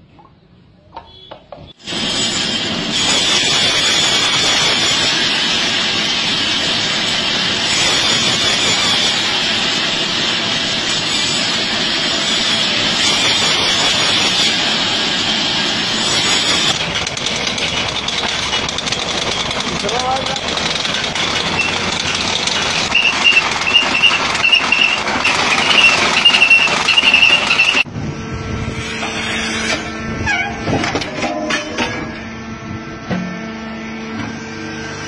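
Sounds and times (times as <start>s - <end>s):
grinding machine with high squeal: 1.1s - 35.0s
sawmill saw cutting log: 1.8s - 27.9s, 28.6s - 30.8s
steady machine hum: 16.6s - 35.0s.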